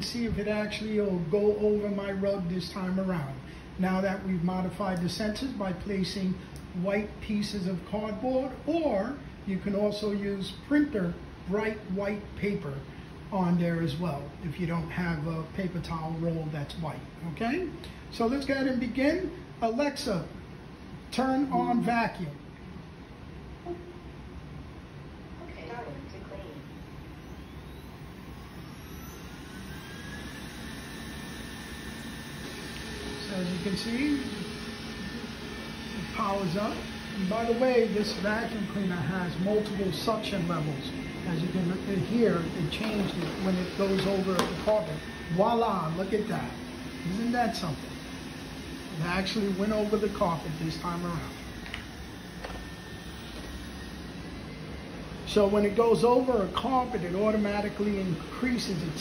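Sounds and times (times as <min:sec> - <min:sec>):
robot vacuum fan whine: 0:00.0 - 0:22.4, 0:23.4 - 0:59.0
robot vacuum running on rug: 0:28.7 - 0:54.7.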